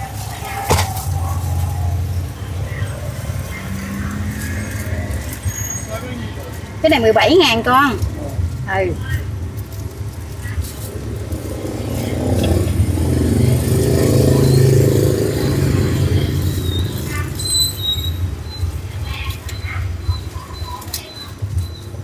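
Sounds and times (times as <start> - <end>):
road traffic rumble: 0.0 - 22.0.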